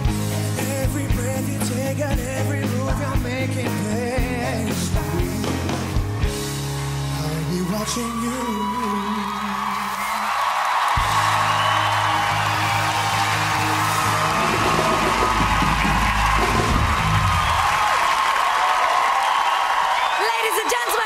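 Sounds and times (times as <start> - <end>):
studio audience cheering: 4.8 - 21.0
live band holding final chord: 11.0 - 18.0.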